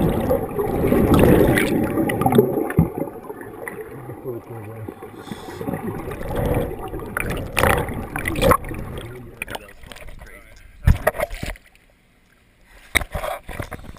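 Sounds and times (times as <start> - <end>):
sharp splashes: 0.0 - 10.1
underwater bubbling and gurgling: 0.0 - 12.0.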